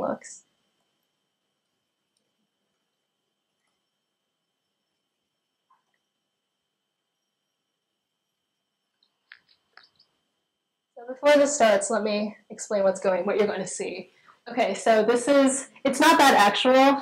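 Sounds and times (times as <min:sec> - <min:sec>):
faint high whine: 0:00.0 - 0:17.0
soft clicks: 0:09.0 - 0:10.1.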